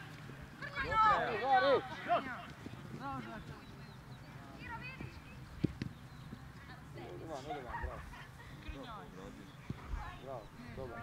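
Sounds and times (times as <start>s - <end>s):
players shouting calls: 0.6s - 3.8s.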